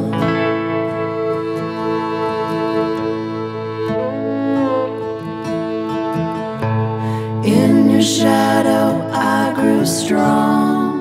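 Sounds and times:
fiddle melody: 0:00.0 - 0:11.0
sustained backing chords: 0:00.0 - 0:11.0.

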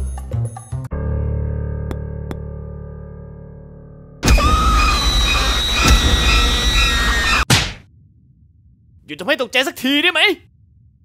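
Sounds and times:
deep rumble: 0:03.3 - 0:09.1, 0:10.4 - 0:11.0
cartoon scream: 0:04.2 - 0:07.4.

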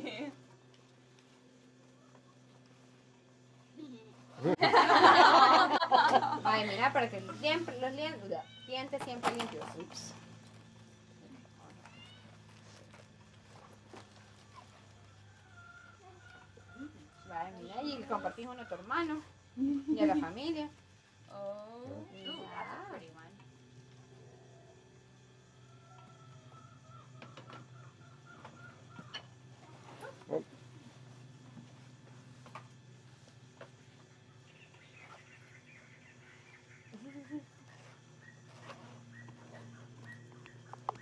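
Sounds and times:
steady low hum: 0:00.0 - 0:41.0
faint distant animal calls: 0:01.0 - 0:04.4, 0:20.9 - 0:41.0.

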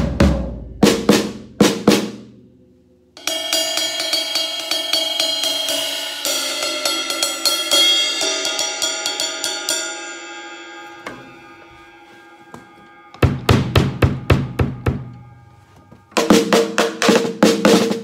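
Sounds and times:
sticks on ringing cymbal: 0:03.2 - 0:16.5
drum strikes: 0:03.2 - 0:18.0.

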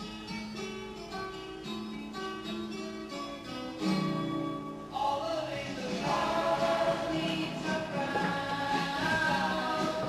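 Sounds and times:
choir singing held chords: 0:05.6 - 0:10.0.

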